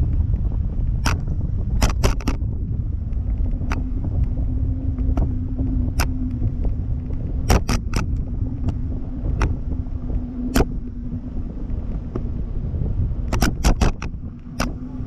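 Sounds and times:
faint steady hum: 0.0s - 15.0s
wind buffeting microphone: 0.0s - 15.0s
sharp clicks: 1.0s - 2.4s, 7.4s - 9.6s, 10.5s - 10.7s, 13.3s - 14.8s.

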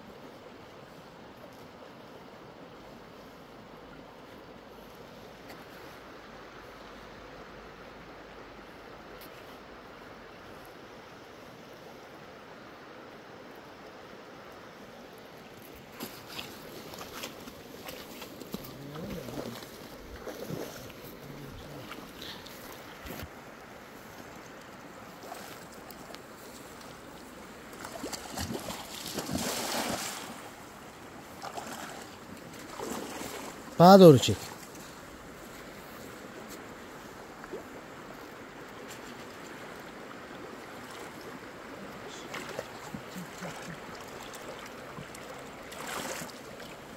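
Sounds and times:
shallow river hissing: 0.1s - 46.9s
wading splashes in rubber boots: 15.9s - 23.1s, 25.1s - 30.6s, 31.2s - 33.8s, 42.2s - 46.9s.

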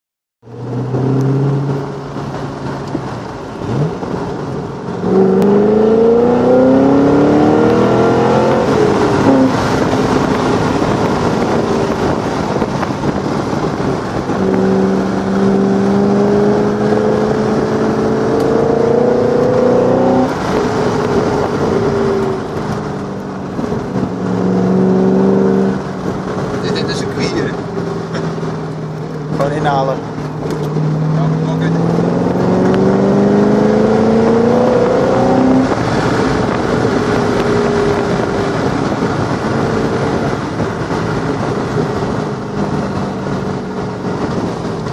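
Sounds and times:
car engine accelerating: 0.4s - 44.9s.

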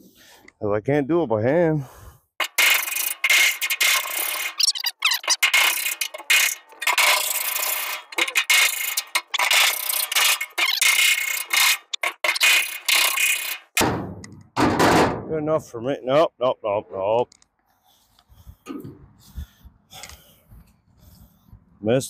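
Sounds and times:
metal tool scraping steel: 2.4s - 13.8s.

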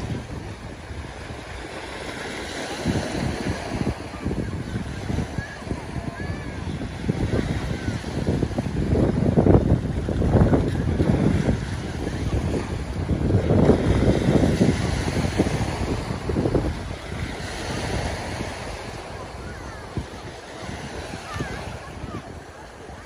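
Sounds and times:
small waves breaking on shore: 0.0s - 23.0s
wind buffeting microphone: 0.0s - 23.0s.

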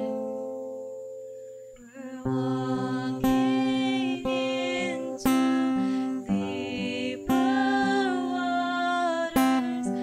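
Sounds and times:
acoustic guitar chords: 0.0s - 10.0s
women singing a worship song: 1.8s - 10.0s.

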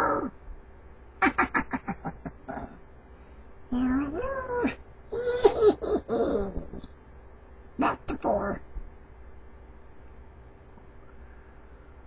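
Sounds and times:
man laughing: 1.4s - 2.8s, 5.2s - 6.8s.

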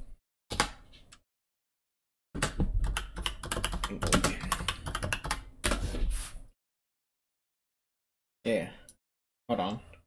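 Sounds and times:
fast keyboard typing: 2.4s - 5.8s.

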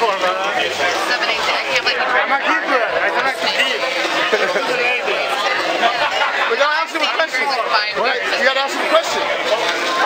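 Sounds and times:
chatter of voices: 0.0s - 10.0s.

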